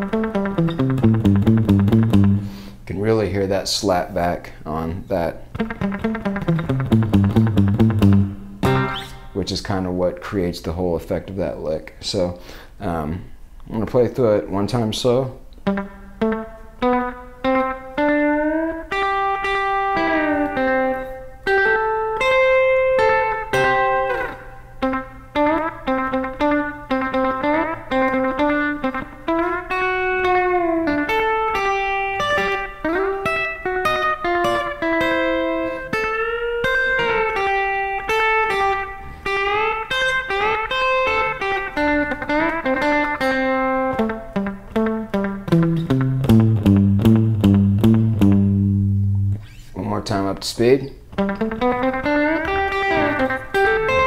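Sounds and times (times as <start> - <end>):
electric guitar lead with delay: 0.0 - 2.6, 5.5 - 9.4, 15.6 - 49.6, 51.1 - 54.0.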